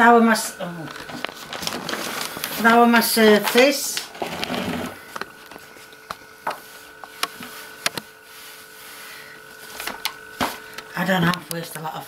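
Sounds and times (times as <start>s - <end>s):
faint steady whine: 0.0s - 12.0s.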